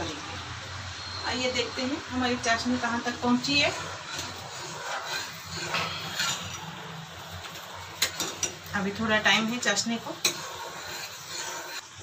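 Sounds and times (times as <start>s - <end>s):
gas burner noise: 0.0s - 12.0s
syrup bubbling: 2.5s - 8.7s, 9.4s - 12.0s.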